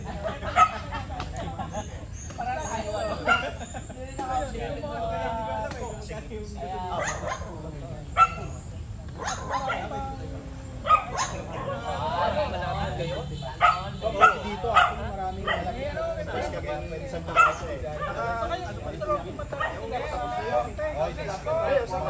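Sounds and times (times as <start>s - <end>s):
people chatting: 0.0s - 22.0s
dog barking: 0.5s - 0.8s, 3.0s - 3.6s, 6.9s - 7.6s, 8.2s - 8.5s, 9.2s - 10.0s, 10.8s - 11.9s, 13.6s - 15.8s, 17.3s - 18.3s, 19.5s - 19.9s.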